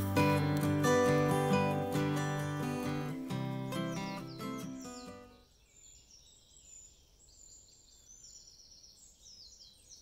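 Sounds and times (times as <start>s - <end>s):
acoustic guitar music: 0.0s - 5.4s
birds chirping and trilling: 0.2s - 10.0s.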